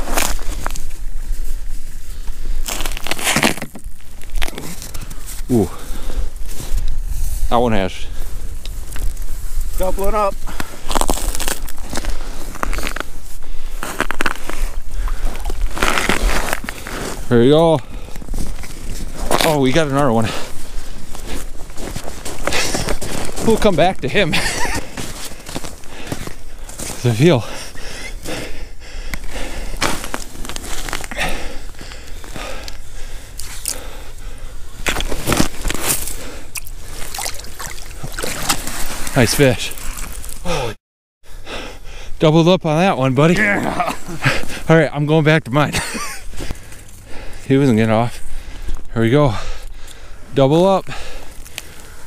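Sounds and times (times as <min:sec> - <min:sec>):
snow crunching under boots: 0:00.0 - 0:28.6, 0:29.3 - 0:33.7, 0:34.6 - 0:40.7.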